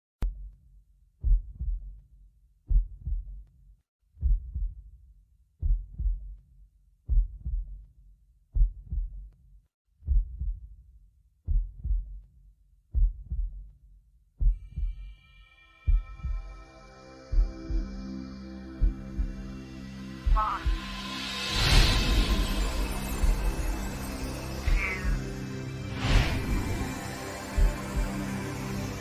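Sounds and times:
sustained music chord: 0:15.5 - 0:29.0.

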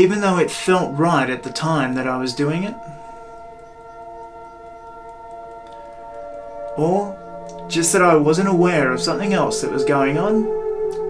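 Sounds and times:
calm ambient drone music: 0:00.0 - 0:11.0.

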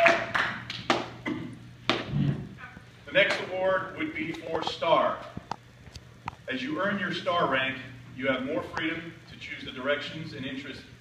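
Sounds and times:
applause: 0:00.0 - 0:01.0.

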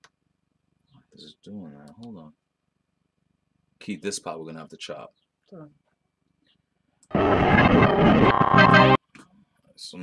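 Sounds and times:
music sample playing: 0:07.1 - 0:09.0.

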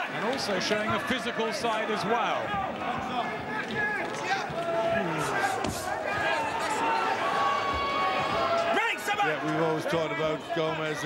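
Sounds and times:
crowd noise: 0:00.0 - 0:11.0
shouting voices: 0:00.0 - 0:11.0.

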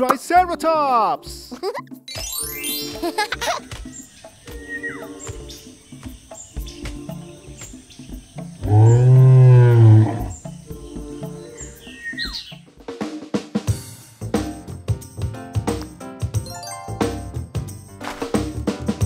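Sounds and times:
background music with drum beat: 0:00.0 - 0:19.0
cartoon dinosaur roar: 0:08.6 - 0:10.4
high bird chirps: 0:11.5 - 0:12.6.

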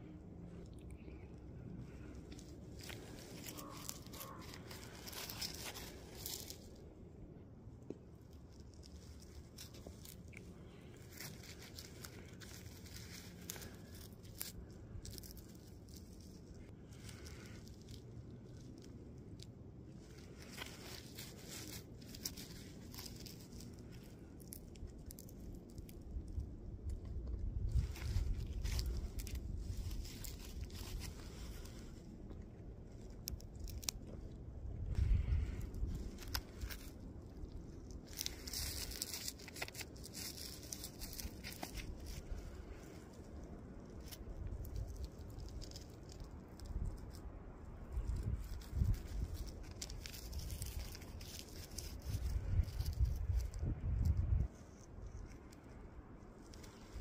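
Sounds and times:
low rumbles: 0:00.0 - 0:57.0
glove handling rock: 0:01.9 - 0:07.0, 0:07.6 - 0:57.0.

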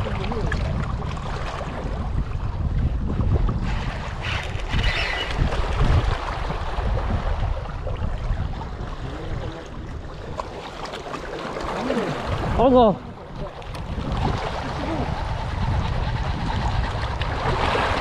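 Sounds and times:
wind buffeting microphone: 0:00.0 - 0:18.0
small waves washing on rocks: 0:09.0 - 0:15.5, 0:16.3 - 0:18.0.

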